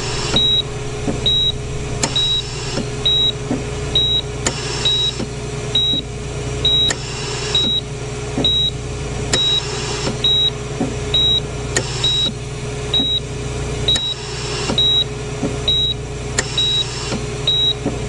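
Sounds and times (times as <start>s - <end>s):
steady hum: 0.0s - 15.0s
patient monitor beeping: 0.2s - 5.2s.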